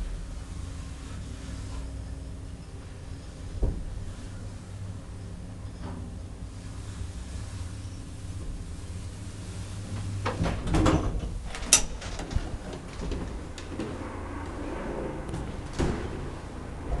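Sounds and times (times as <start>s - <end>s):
low elevator hum: 0.0s - 17.0s
elevator doors rattling and knocking: 10.0s - 17.0s.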